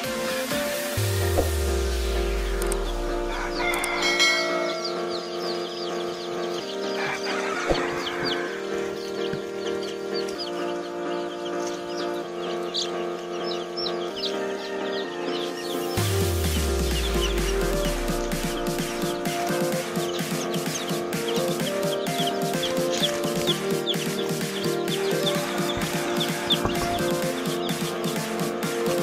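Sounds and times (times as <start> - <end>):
baby chicks peeping: 0.0 - 29.0
background music with held chords: 0.0 - 29.0.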